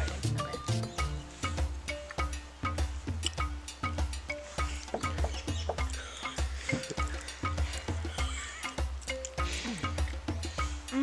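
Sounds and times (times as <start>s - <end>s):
background music with bass beat: 0.0s - 11.0s.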